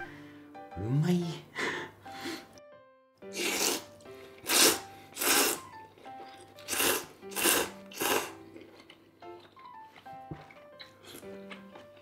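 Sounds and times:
soft background music: 0:00.0 - 0:12.0
man slurping noodles: 0:03.3 - 0:05.8, 0:06.6 - 0:08.4.

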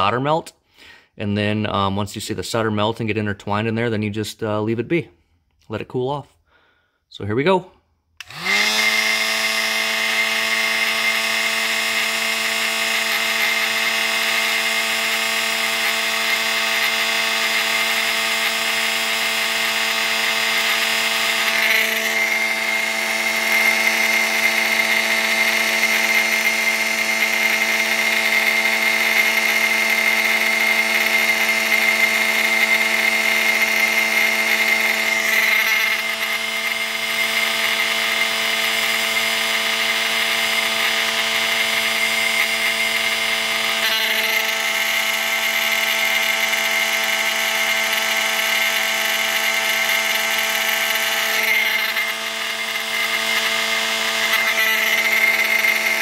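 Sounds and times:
heat gun whining and humming: 0:08.1 - 0:56.0.

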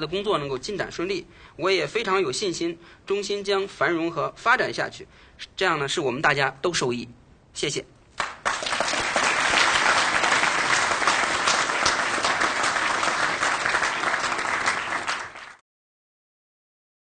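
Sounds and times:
audience applauding: 0:08.2 - 0:15.6.

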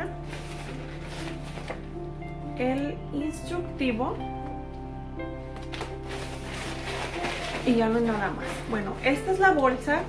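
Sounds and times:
paper rustling: 0:00.0 - 0:02.0, 0:05.6 - 0:10.0
background music with held tones: 0:00.0 - 0:10.0.

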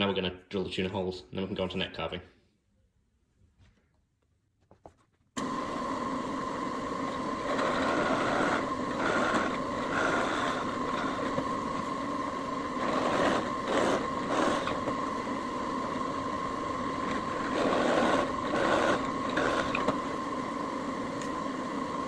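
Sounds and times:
drill press motor running: 0:05.4 - 0:22.0
drill bit boring into wood: 0:07.1 - 0:15.1, 0:16.8 - 0:20.0.

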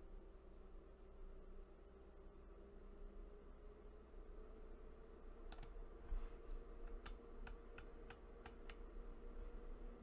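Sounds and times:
low electrical hum: 0:00.0 - 0:10.0
computer mouse clicks: 0:05.5 - 0:05.8, 0:06.8 - 0:08.9.

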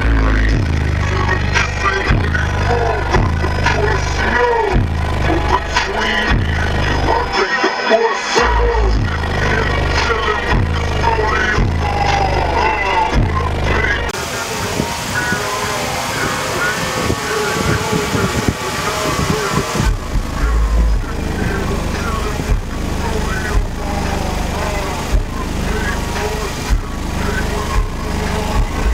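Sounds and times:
loud music with deep bass: 0:00.0 - 0:28.9.

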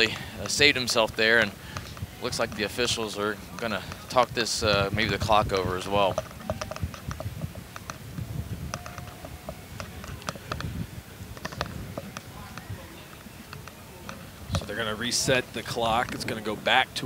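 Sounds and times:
wind rumble on microphone: 0:00.0 - 0:17.0
sharp clicks and taps: 0:05.5 - 0:08.0.

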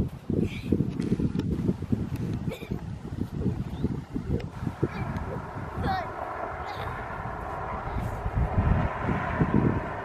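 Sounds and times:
wind buffeting microphone: 0:00.0 - 0:10.0
faint steady drone: 0:03.4 - 0:10.0.

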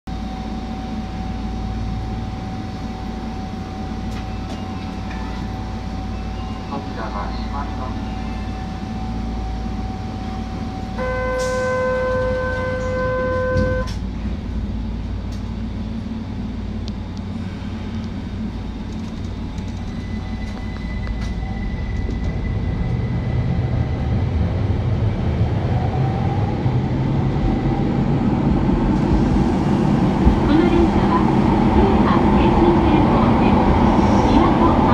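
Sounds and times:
train low hum and whine: 0:00.1 - 0:34.9
loud departure buzzer: 0:10.9 - 0:14.0.

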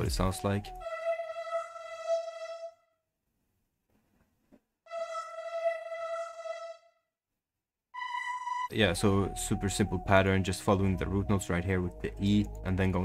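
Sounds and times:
synth pad notes: 0:00.0 - 0:02.8, 0:04.9 - 0:06.8.

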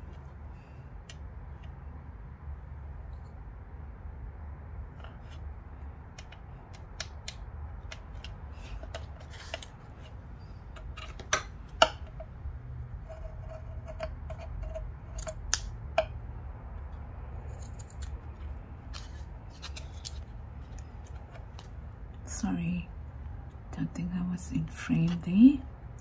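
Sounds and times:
rustling of card and lace: 0:17.5 - 0:21.9.

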